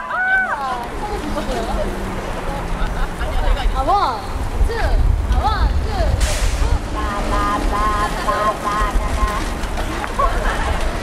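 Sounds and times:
wind rumbling on microphone: 0:00.6 - 0:11.0
burst of hiss: 0:06.2 - 0:06.7.

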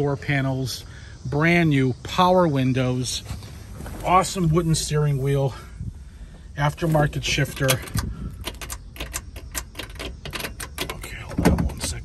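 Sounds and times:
keys jangling and clicking: 0:07.3 - 0:12.0.

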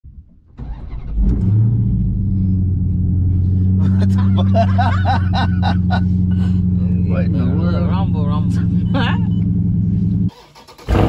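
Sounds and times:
car engine starting and idling: 0:00.1 - 0:11.0.

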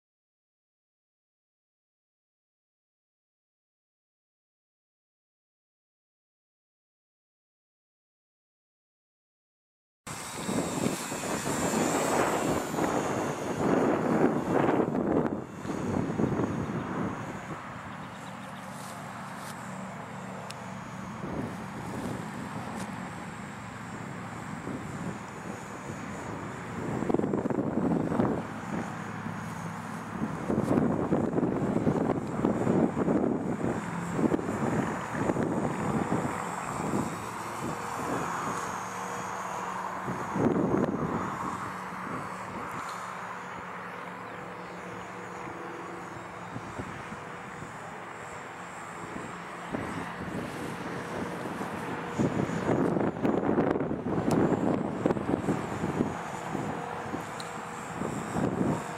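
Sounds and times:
model plane motor whine: 0:10.1 - 0:58.9
wind rumbling on microphone: 0:10.1 - 0:58.9.

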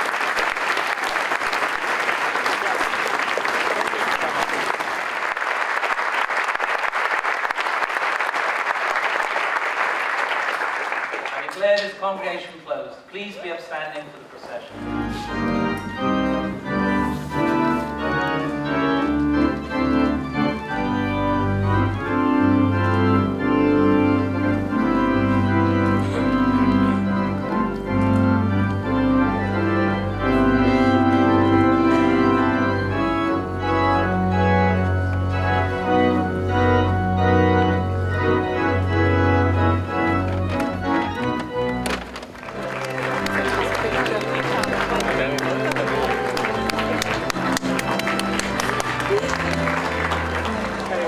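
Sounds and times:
crowd noise: 0:00.0 - 0:51.0
organ playing slow chords: 0:14.7 - 0:51.0.

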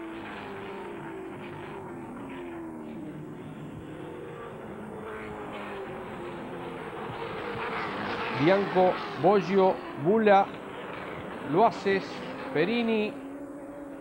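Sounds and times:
race car engines: 0:00.0 - 0:14.0.

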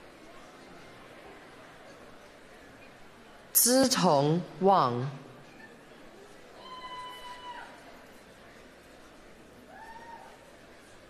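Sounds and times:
high-pitched cheering whoop: 0:06.6 - 0:07.8, 0:09.7 - 0:10.5.

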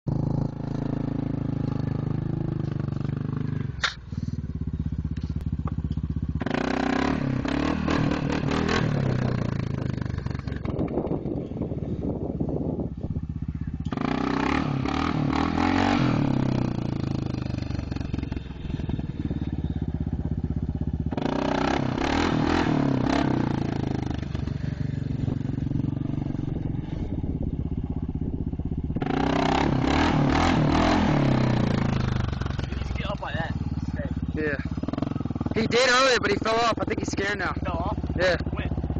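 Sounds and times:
atv engine revving: 0:00.1 - 0:38.9.

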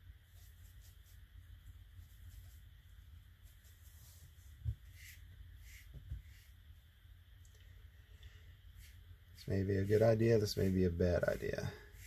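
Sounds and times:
brush swishing and tapping: 0:00.0 - 0:06.8, 0:08.2 - 0:12.0.

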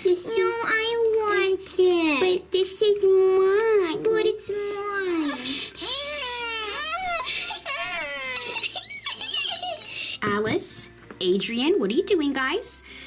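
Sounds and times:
person whining and crying: 0:05.0 - 0:10.0.

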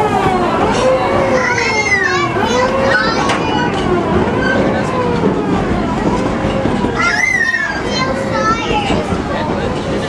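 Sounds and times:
passengers chattering: 0:00.0 - 0:10.0
train rumbling: 0:00.0 - 0:10.0
child's high-pitched call: 0:01.0 - 0:03.8, 0:07.0 - 0:09.0.

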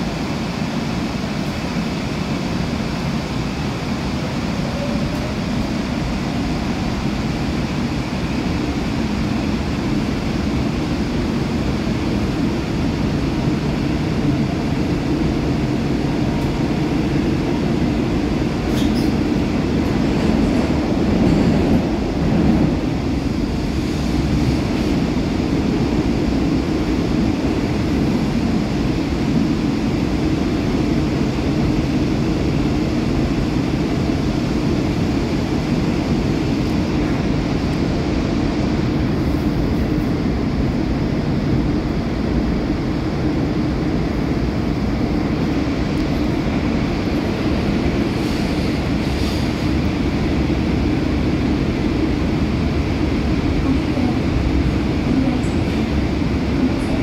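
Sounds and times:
subway train wheels rumbling on rail: 0:00.0 - 0:57.0.

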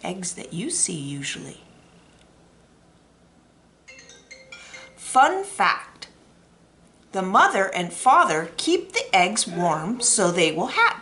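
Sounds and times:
faint ringing chime-like tone: 0:03.9 - 0:05.0.

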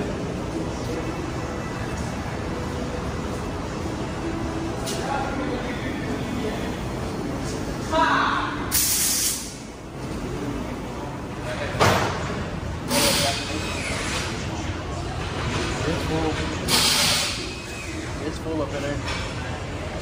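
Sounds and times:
compressed air hissing: 0:08.7 - 0:09.7, 0:16.7 - 0:17.5.

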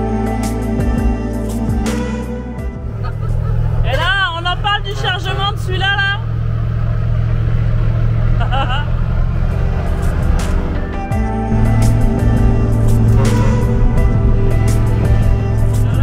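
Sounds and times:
background music: 0:00.0 - 0:16.0
diesel truck engine rumble: 0:02.6 - 0:16.0.

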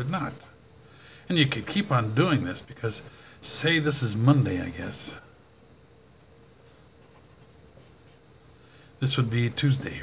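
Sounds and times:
pen scratching on paper: 0:07.0 - 0:08.4.

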